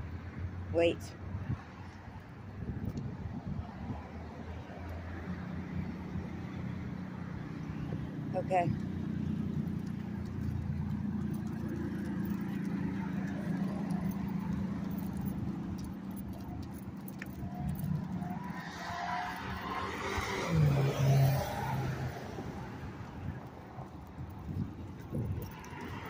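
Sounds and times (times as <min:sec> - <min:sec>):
traffic rumble: 0:00.0 - 0:26.0
vehicle passing close: 0:01.4 - 0:26.0.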